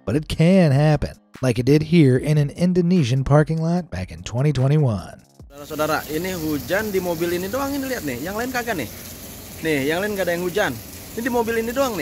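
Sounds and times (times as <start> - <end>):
person talking: 0.0 - 9.0, 9.6 - 12.0
rain on car roofs: 5.6 - 12.0.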